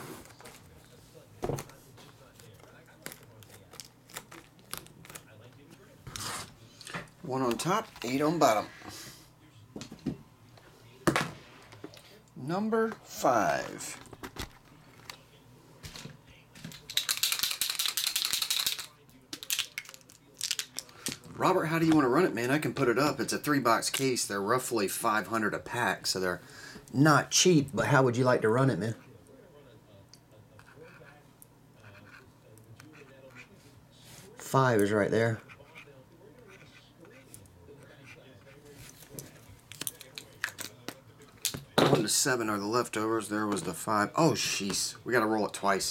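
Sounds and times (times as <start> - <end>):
marker pen scratching on cardboard: 35.4 - 38.7.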